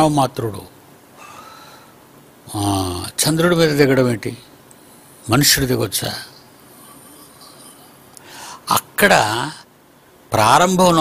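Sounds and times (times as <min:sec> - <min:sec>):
man breathing: 0:01.2 - 0:02.0, 0:06.8 - 0:08.7.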